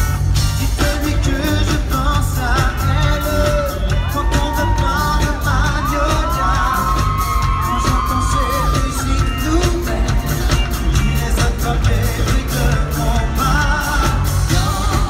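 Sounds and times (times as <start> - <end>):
heavy bass beat: 0.0 - 15.0
person singing: 0.4 - 15.0.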